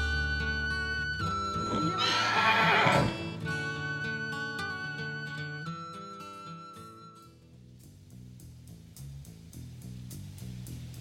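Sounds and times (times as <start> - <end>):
background music: 0.0 - 11.0
horse whinnying: 1.3 - 3.5.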